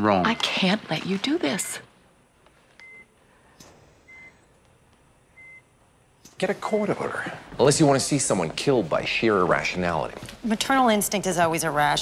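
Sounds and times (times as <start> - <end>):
patient monitor beeping: 0.0 - 3.3, 4.0 - 7.1.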